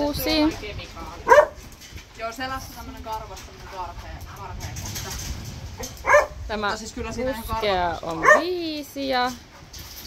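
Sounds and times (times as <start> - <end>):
dog barking: 1.2 - 1.6, 5.8 - 6.4, 8.2 - 8.5.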